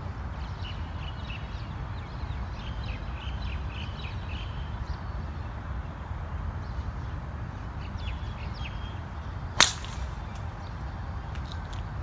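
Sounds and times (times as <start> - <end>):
golf club striking ball: 9.6 - 10.5.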